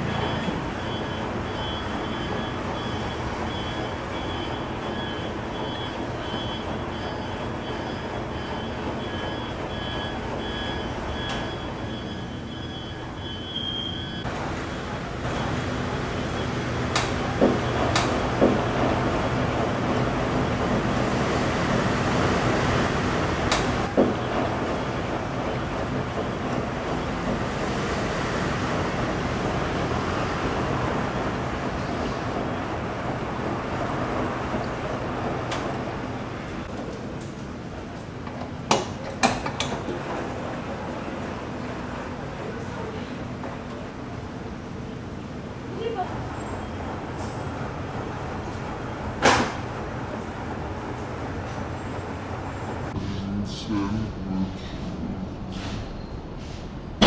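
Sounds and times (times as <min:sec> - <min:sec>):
washing machine drum churning: 0:00.0 - 0:13.4, 0:14.1 - 0:44.9.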